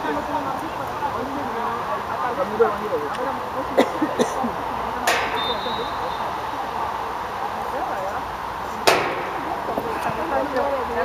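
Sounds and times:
distant players shouting: 4.5s - 7.4s.

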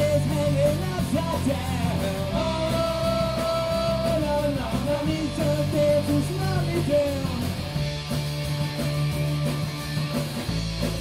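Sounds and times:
live rock band instrumental: 0.0s - 11.0s.

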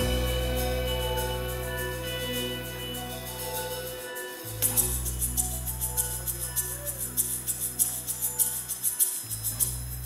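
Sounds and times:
live band playing: 0.0s - 9.2s.

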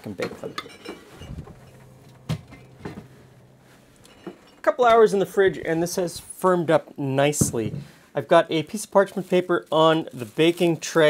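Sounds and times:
low steady hum: 0.2s - 7.2s.

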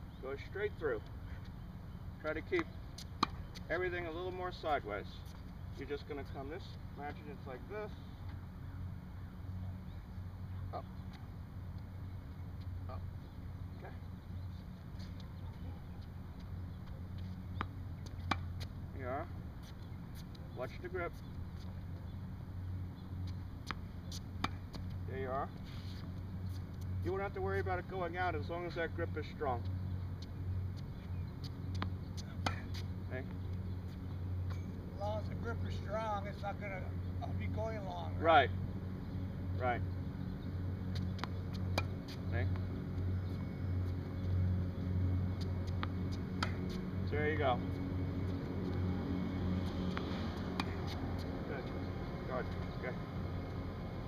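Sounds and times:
steady low hum: 0.0s - 54.0s
tennis ball bouncing on court: 2.6s - 4.6s, 16.0s - 18.8s, 23.2s - 25.0s, 29.6s - 34.7s, 40.7s - 54.0s
racquet hitting tennis ball: 45.4s - 46.9s, 49.6s - 51.5s.

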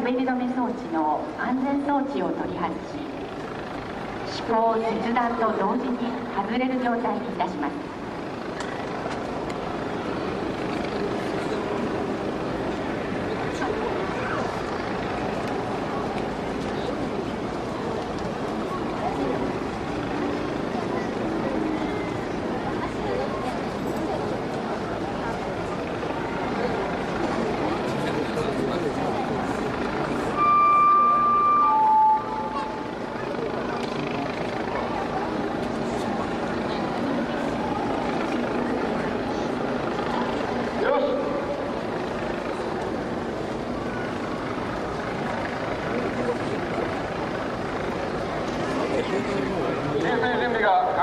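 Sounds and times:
murmur of crowd chatter: 0.0s - 51.0s
loud two-note signal: 30.2s - 33.1s.

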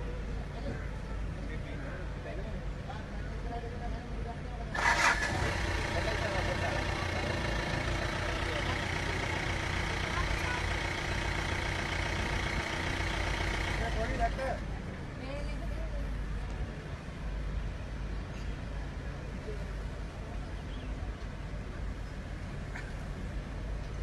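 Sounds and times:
vehicle engine running: 4.7s - 15.5s.

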